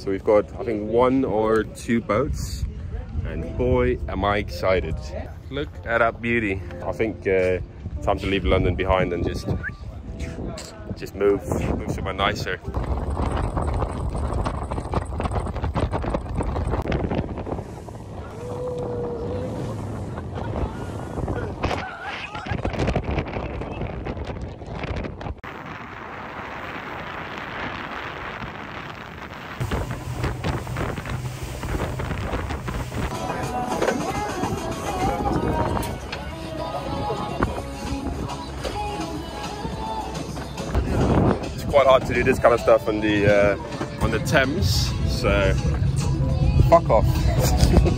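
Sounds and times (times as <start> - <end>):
water noise: 0.0 - 47.9
wind buffeting microphone: 0.0 - 47.9
background music: 3.2 - 12.8, 29.7 - 47.9
motorboat engine: 12.7 - 21.6, 27.6 - 41.6.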